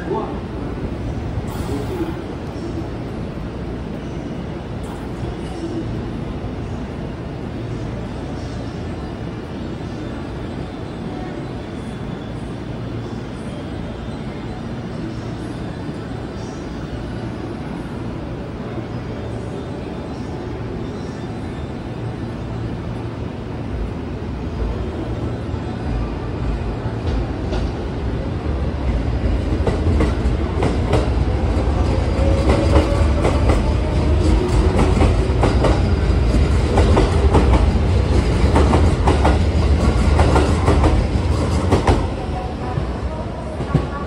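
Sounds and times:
electric train rumbling past: 0.0s - 44.0s.

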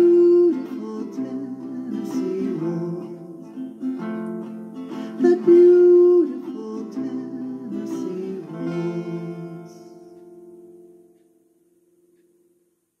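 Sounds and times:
acoustic guitar strummed chords: 0.0s - 12.8s.

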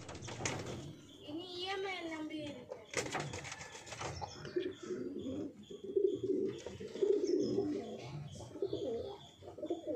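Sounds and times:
pigeons cooing: 2.7s - 9.9s.

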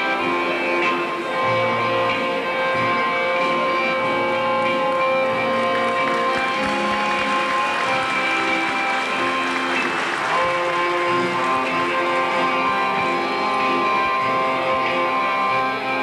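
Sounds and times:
accordion folk music: 0.0s - 16.0s
audience clapping: 4.1s - 15.2s.

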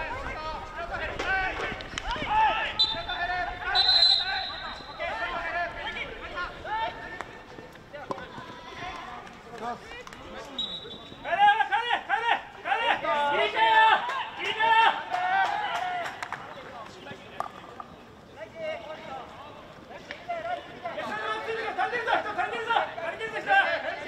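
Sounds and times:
players shouting: 0.0s - 16.3s, 18.7s - 24.0s.

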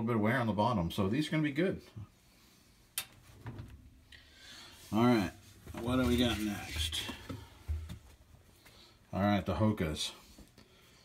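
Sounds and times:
hand rummaging in washing machine: 5.6s - 7.9s.

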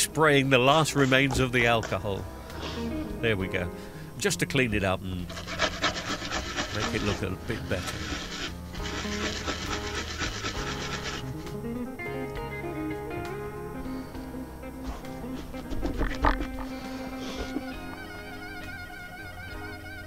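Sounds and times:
background music: 0.0s - 20.0s
scrubbing a circuit board: 5.3s - 11.4s.

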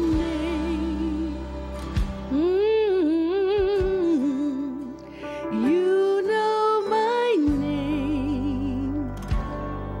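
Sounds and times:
woman singing gospel melody: 0.0s - 9.3s
sustained instrumental accompaniment: 0.0s - 10.0s.

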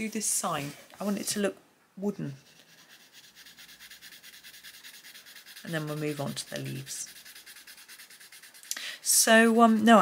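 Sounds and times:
coloured pencil shading on paper: 2.2s - 10.0s.

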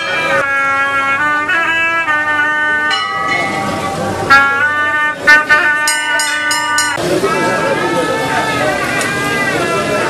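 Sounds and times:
reedy wind instrument long notes: 0.0s - 10.0s.

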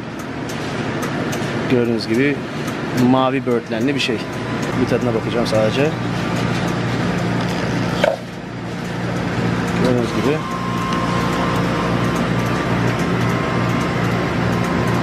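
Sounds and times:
slush machine humming: 0.0s - 15.0s.

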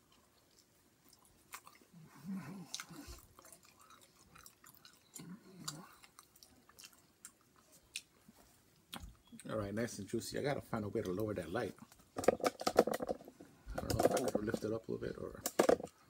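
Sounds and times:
person chewing food: 0.0s - 9.5s.

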